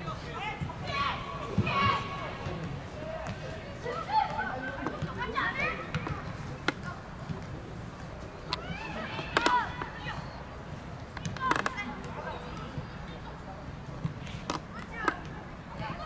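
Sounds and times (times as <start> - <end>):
young players shouting: 0.1 - 2.5.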